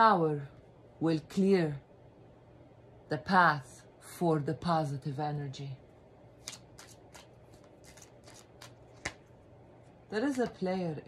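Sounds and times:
cards being shuffled: 0:06.4 - 0:09.3.

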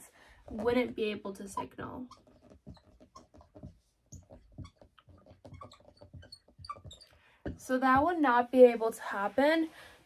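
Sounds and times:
marker squeaking on whiteboard: 0:00.4 - 0:08.1.

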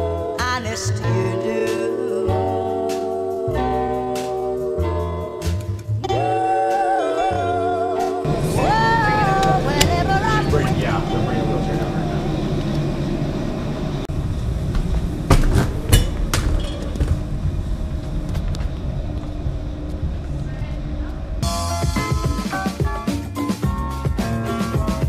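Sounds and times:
soul song with singing: 0:00.0 - 0:12.6.

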